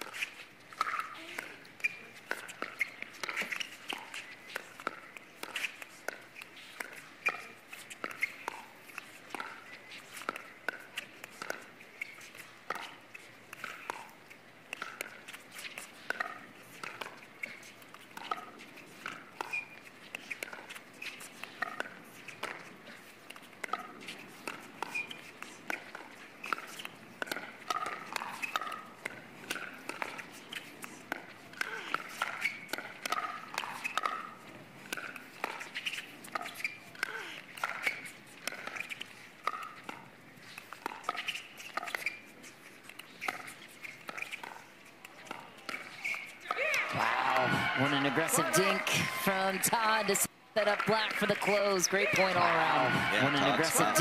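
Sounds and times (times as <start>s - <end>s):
footsteps on court: 0.0s - 54.0s.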